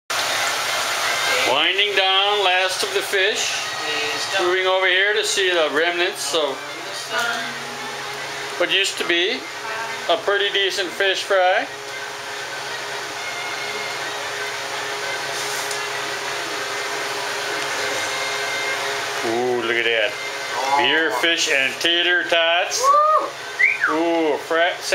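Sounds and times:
fish sizzling in hot oil: 0.1s - 3.9s
fan motor whooshing hiss: 0.1s - 24.9s.

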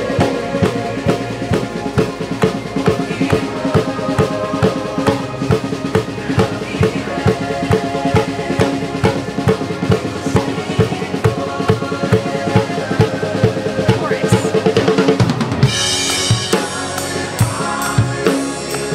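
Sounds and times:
backing track sustained tones: 0.0s - 18.9s
drum kit groove: 0.0s - 18.9s.

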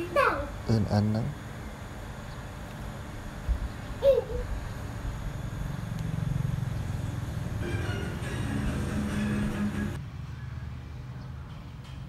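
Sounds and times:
music with held notes: 7.6s - 10.0s.

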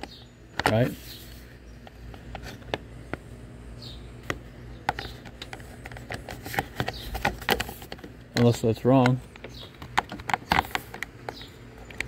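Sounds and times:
plastic clicks and taps: 4.2s - 12.0s.

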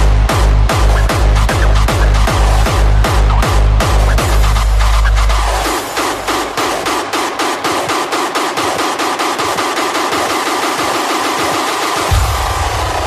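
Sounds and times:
bass: 0.0s - 7.0s.

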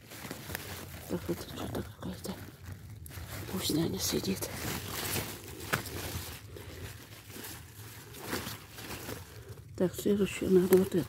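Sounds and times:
leaves rustling and crinkling: 0.0s - 11.0s.

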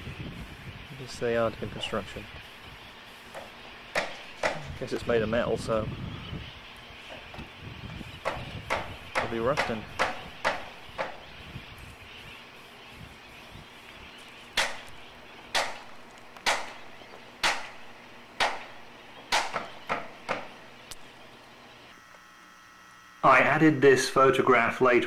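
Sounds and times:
tool knocking on iron: 3.4s - 4.6s, 8.2s - 11.2s, 19.3s - 20.6s.

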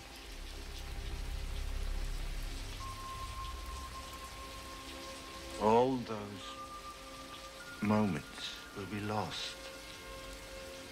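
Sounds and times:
low rumble: 0.0s - 4.9s
steady rain falling: 0.0s - 10.9s
thin high tone: 2.7s - 6.9s.

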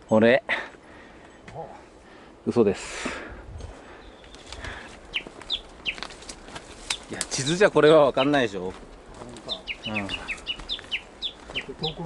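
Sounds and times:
bird calling falling notes: 4.0s - 6.2s, 9.4s - 12.0s.

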